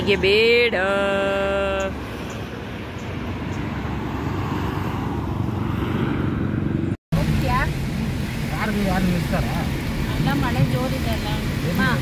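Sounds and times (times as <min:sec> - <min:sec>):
highway traffic passing: 0:00.0 - 0:12.0.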